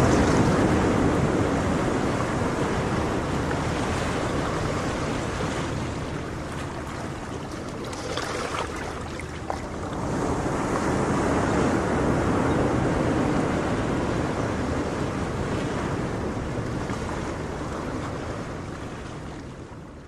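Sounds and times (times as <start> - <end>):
ocean wave washing in: 0.0 - 19.3.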